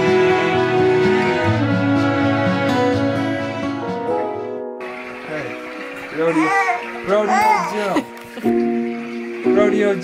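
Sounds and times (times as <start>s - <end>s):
background music: 0.0s - 10.0s
baby squealing and babbling: 6.1s - 8.0s.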